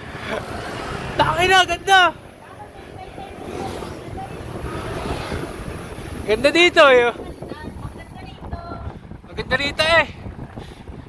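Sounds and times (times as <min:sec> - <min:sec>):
bicycle tyres humming on pavement: 0:00.0 - 0:11.0
wind buffeting microphone: 0:00.0 - 0:11.0.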